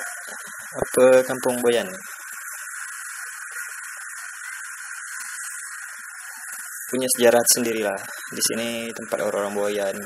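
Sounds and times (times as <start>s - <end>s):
high-pitched background hiss: 0.0s - 10.0s.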